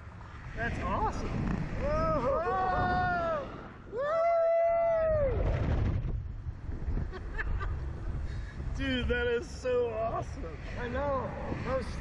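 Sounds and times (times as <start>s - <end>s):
wind buffeting microphone: 0.0s - 12.0s
riders screaming: 1.8s - 5.5s.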